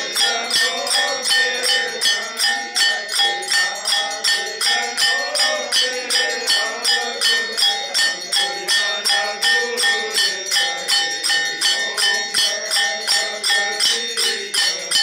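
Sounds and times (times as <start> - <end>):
bell ringing rhythmically: 0.0 - 15.0.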